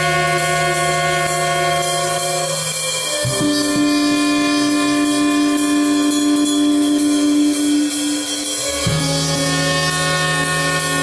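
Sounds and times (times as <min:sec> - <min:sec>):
cymbal wash: 0:00.0 - 0:11.0
jazz brass band held note: 0:00.0 - 0:11.0.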